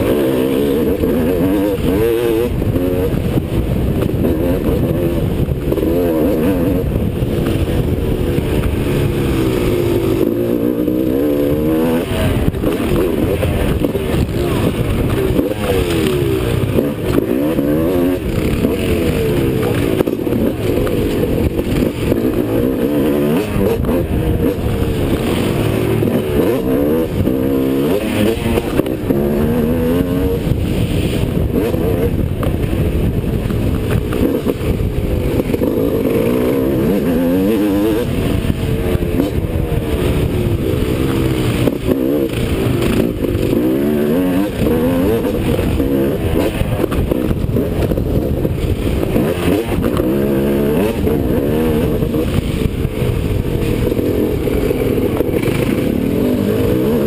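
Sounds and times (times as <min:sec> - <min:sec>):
motocross bike engine revving: 0:00.0 - 0:57.0.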